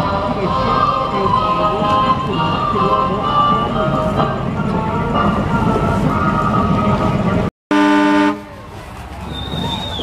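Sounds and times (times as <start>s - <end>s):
busy parade street noise: 0.0s - 10.0s
vehicle horn honk: 7.7s - 8.5s.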